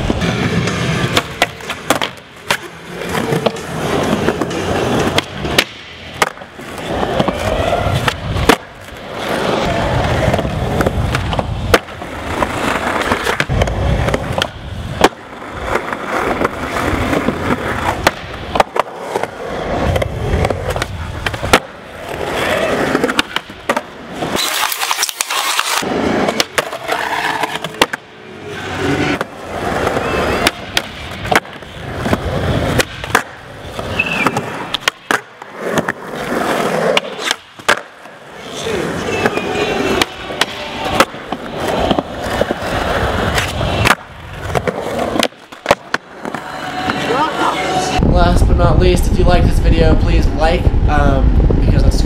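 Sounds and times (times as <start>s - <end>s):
skateboard clacks: 0.0s - 47.0s
skateboard wheels rolling on concrete: 0.0s - 52.0s
skateboard hissing scrape: 24.3s - 26.2s.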